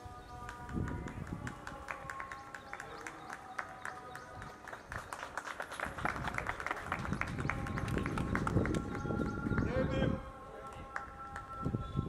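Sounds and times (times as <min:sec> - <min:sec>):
small group clapping: 0:00.3 - 0:09.8, 0:10.6 - 0:11.7.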